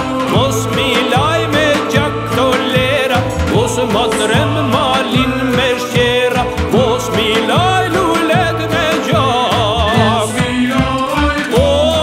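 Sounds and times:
instrumental backing: 0.0s - 12.0s
man singing folk song: 0.0s - 12.0s.

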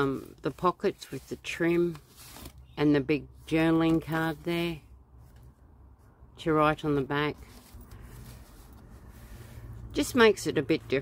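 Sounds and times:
paper rustling and sliding: 0.0s - 2.8s, 7.4s - 9.8s.

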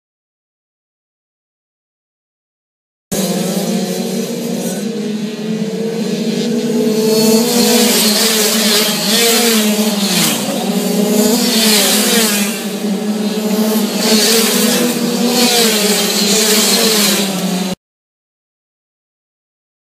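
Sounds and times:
dirt bikes racing past: 3.1s - 17.8s.

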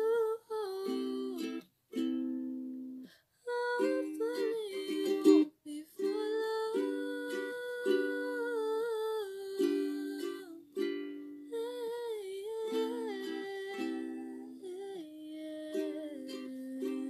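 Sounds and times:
person humming a melody: 0.0s - 1.6s, 3.5s - 17.0s.

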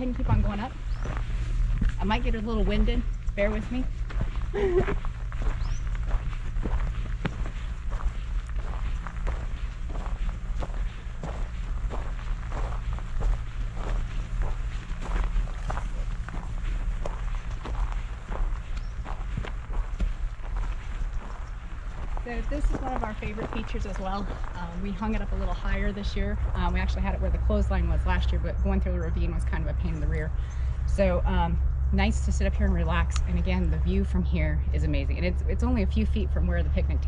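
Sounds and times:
footsteps on gravel: 0.0s - 28.8s
low rumble: 0.0s - 37.0s.

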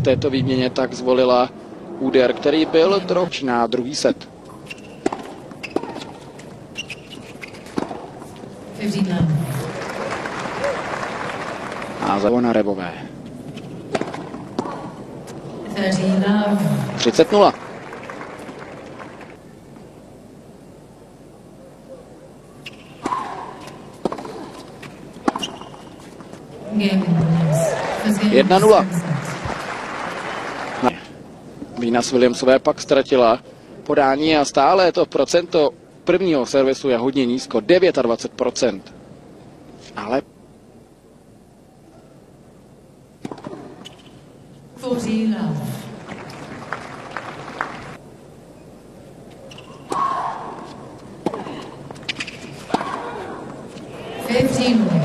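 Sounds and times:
quiet court ambience: 0.0s - 55.0s
racket striking tennis ball: 4.7s - 6.2s, 13.9s - 14.8s, 22.7s - 26.0s
tennis ball bouncing on hard court: 4.7s - 6.2s, 22.7s - 25.9s.

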